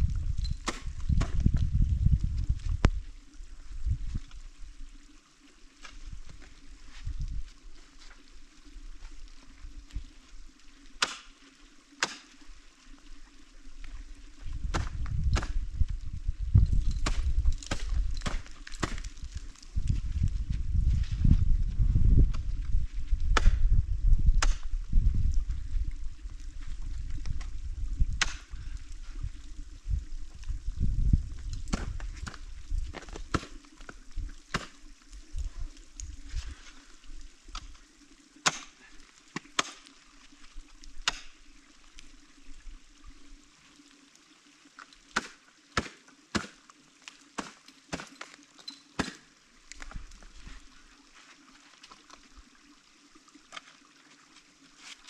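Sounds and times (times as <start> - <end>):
ice tools striking ice: 17.0 - 19.4, 38.4 - 39.8, 47.4 - 49.3.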